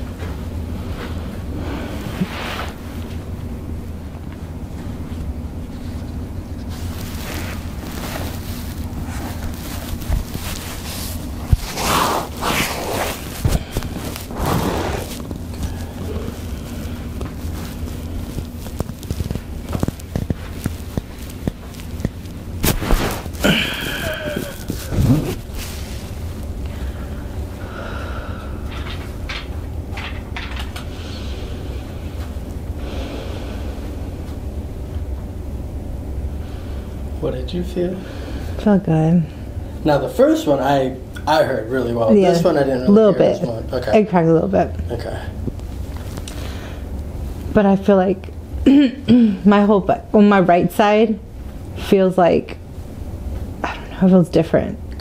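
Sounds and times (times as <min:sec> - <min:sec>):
massage device humming: 0:00.0 - 0:55.0
loud breaths: 0:23.2 - 0:25.4, 0:26.6 - 0:28.8, 0:32.8 - 0:34.0, 0:37.9 - 0:38.6, 0:46.2 - 0:47.0
person groaning: 0:23.4 - 0:25.4.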